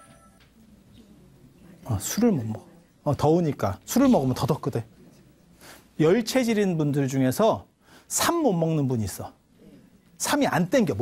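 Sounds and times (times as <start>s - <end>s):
ringing tones: 0.0s - 0.4s.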